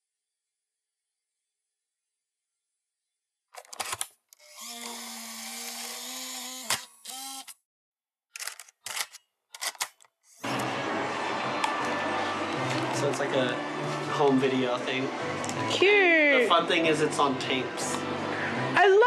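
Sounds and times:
tape mechanism clicks: 3.6s - 7.6s, 8.3s - 10.1s
tape motor whirring: 4.3s - 7.6s.

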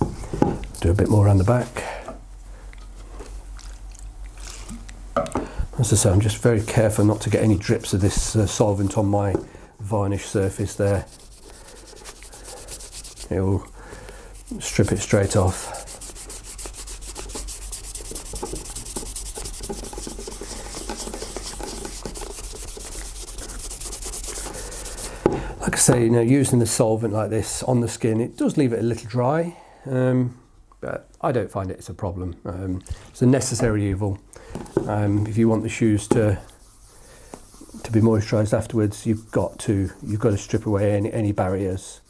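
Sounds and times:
plastic bottle and pad rustling: 14.5s - 25.4s.

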